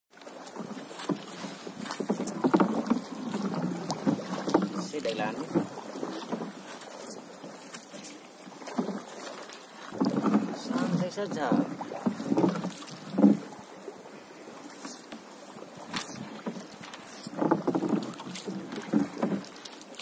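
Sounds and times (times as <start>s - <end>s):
paddle in water: 0.1s - 20.0s
paddle knocking against hull: 0.1s - 20.0s
man talking: 4.8s - 5.5s, 10.6s - 11.7s.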